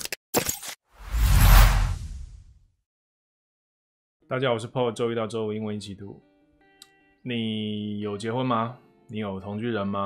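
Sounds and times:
whoosh: 1.0s - 2.6s.

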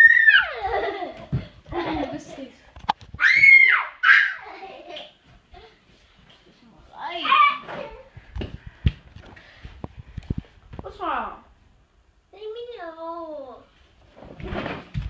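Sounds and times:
child squealing: 0.0s - 0.7s, 3.2s - 4.6s.

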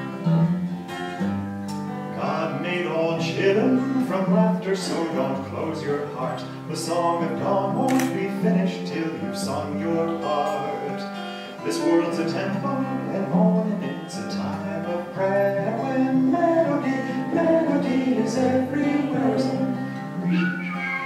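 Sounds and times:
acoustic guitar strumming: 0.0s - 21.0s
man's voice: 2.2s - 19.7s.

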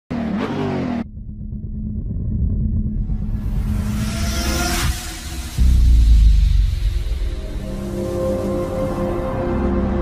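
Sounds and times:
car engine revving: 0.1s - 8.1s
low steady rumble: 1.0s - 8.1s.

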